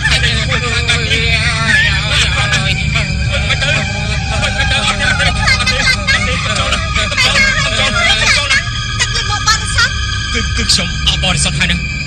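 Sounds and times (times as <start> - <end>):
voices shouting and screaming: 0.0 - 10.5
steady low rumble: 0.0 - 12.0.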